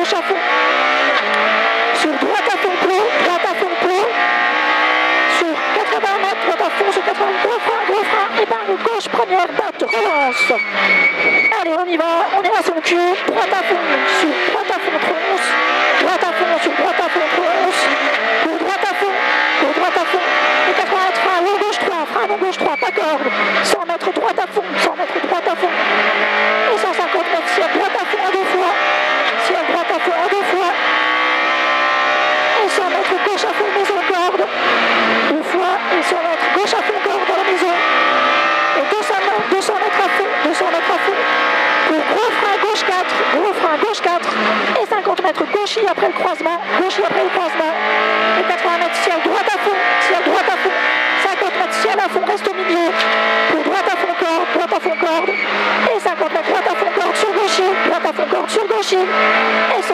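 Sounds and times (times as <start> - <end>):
rally car engine revving: 0.0 - 59.9.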